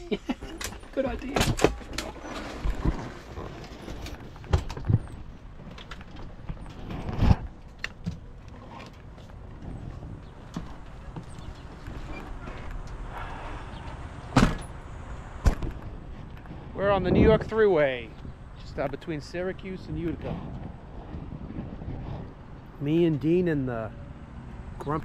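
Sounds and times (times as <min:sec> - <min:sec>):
low rumble: 0:09.4 - 0:25.0.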